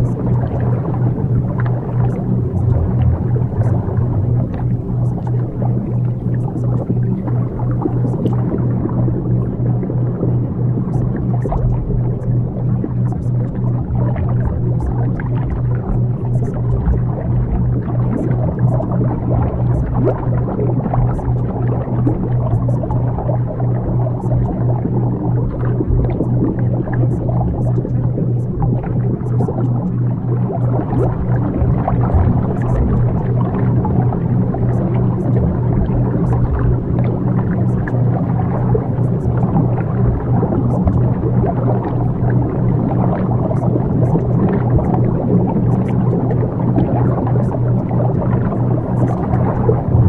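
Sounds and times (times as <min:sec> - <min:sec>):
pulsing low hum: 0:00.0 - 0:50.0
steady noise wash: 0:00.0 - 0:50.0.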